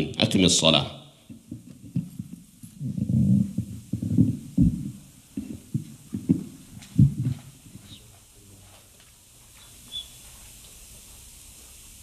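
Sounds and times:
microphone handling thumps: 1.3 - 7.9.

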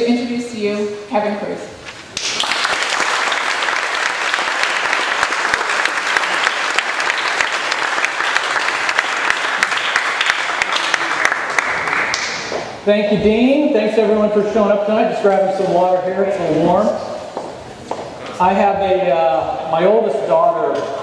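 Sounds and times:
audience applauding: 2.2 - 12.8.

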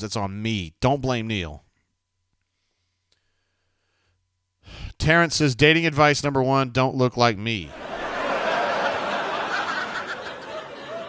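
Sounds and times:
man's quick in-breath: 2.4 - 4.9.

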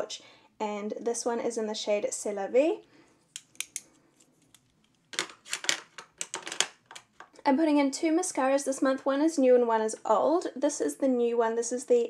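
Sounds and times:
plastic pencils clicking together: 3.4 - 3.9, 4.5 - 7.1.

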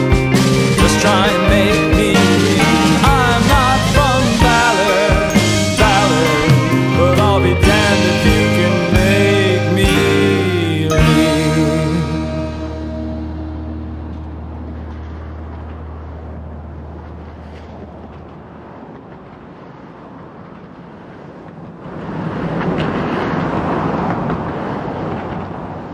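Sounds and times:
rock song: 0.0 - 14.5
noisy outdoor rumble: 0.0 - 25.9.

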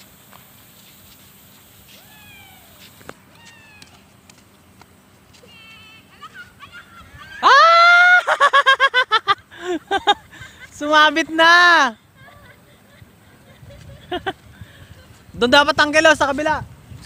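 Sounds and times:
distant high calls: 1.6 - 4.2
child shouting: 5.5 - 8.2.

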